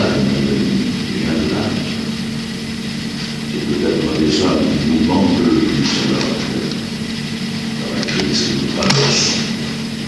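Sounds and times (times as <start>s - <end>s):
low hum: 0.0s - 10.0s.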